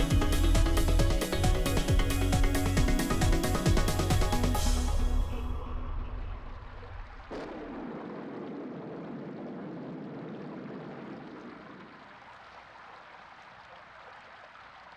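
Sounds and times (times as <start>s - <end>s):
music track: 0.0s - 7.2s
running water: 0.0s - 14.9s.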